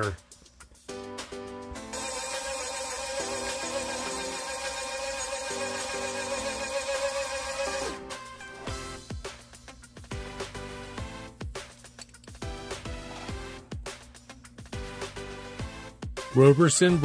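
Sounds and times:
background music: 0.0s - 17.0s
powder dispenser motor whirring: 1.9s - 8.1s.

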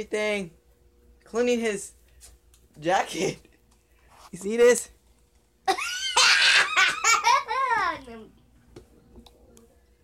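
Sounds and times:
young child laughing loudly: 5.7s - 8.0s.

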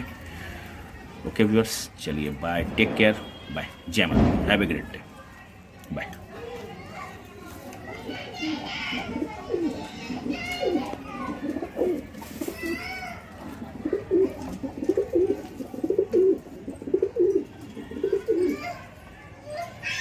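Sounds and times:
pigeons cooing: 8.0s - 18.8s.

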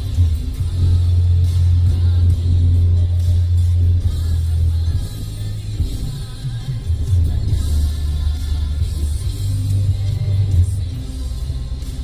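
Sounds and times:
music with deep bass note: 0.0s - 12.0s.

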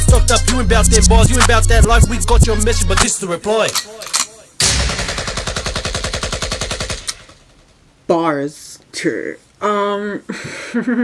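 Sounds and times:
rapid automatic gunfire: 4.9s - 7.4s.

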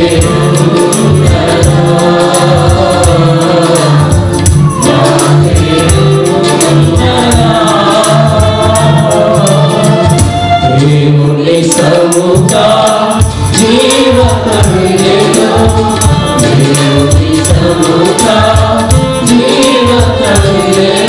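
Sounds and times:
choir singing worship song: 0.0s - 21.0s
tambourine shaken: 0.0s - 21.0s.

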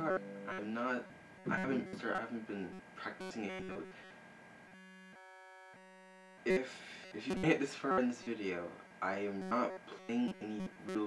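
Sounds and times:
guitar amplifier buzz: 0.0s - 4.1s, 7.2s - 7.6s, 9.4s - 11.0s.

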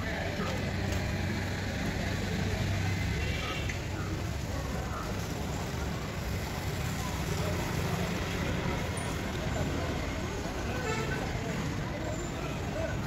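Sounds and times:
faint distant voices: 0.0s - 13.0s.

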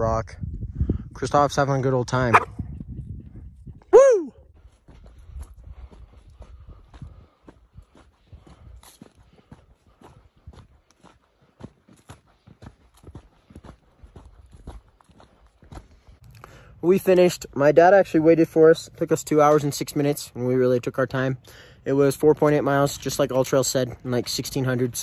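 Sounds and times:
short falling cry: 3.9s - 4.4s
footsteps on stony ground: 4.6s - 16.4s, 18.8s - 25.0s.

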